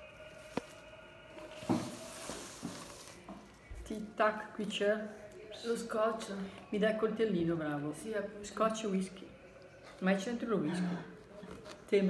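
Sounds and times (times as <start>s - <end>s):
ribbon and wrapping paper rustling: 0.1s - 4.0s.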